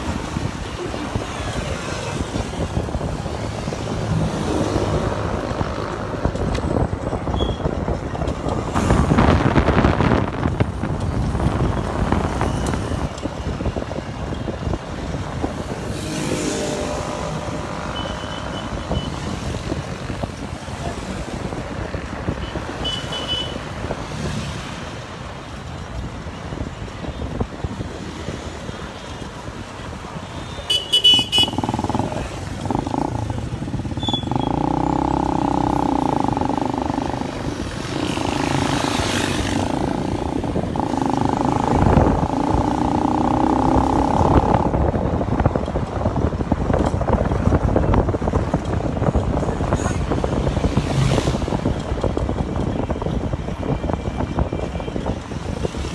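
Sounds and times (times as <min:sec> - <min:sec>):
motorcycle engine and road noise: 0:00.0 - 0:55.9
passing motorbikes and cars: 0:00.0 - 0:55.9.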